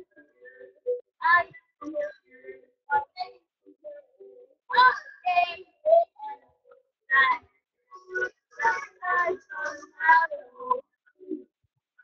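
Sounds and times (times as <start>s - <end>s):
child singing: 0.0s - 6.4s, 7.1s - 10.8s.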